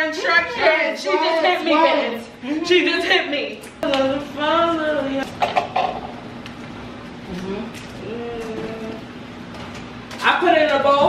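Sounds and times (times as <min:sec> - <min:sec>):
person humming: 0:07.3 - 0:09.1.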